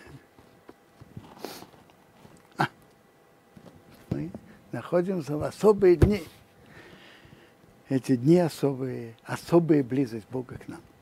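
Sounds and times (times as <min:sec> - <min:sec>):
man clearing throat: 0:02.6 - 0:02.8.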